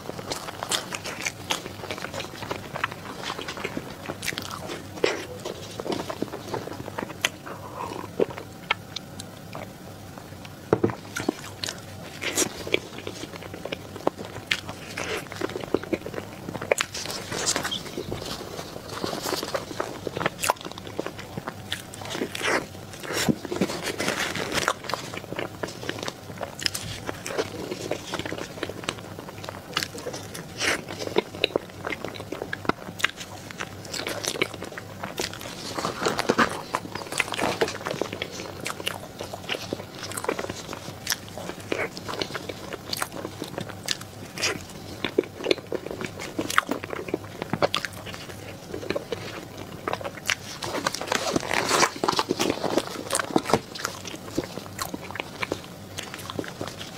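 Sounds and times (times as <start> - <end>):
person chewing pastry: 0.0 - 56.9.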